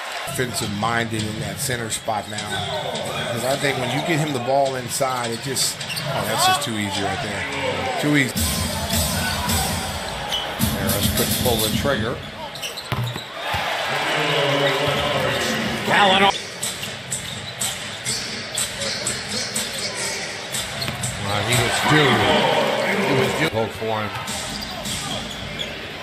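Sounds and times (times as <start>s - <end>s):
arena crowd noise: 0.0s - 26.0s
basketball bouncing on court: 12.5s - 13.7s, 20.6s - 21.2s
basketball bouncing on hardwood: 12.9s - 13.6s
crowd murmur: 13.8s - 26.0s.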